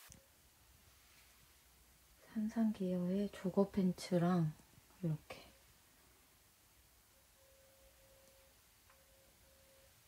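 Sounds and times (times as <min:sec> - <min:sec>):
faint thin steady tone: 0:00.0 - 0:10.0.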